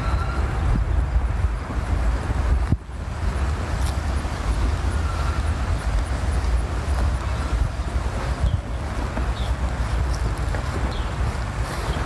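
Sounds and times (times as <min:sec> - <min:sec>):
wind buffeting a microphone: 0:00.0 - 0:12.0.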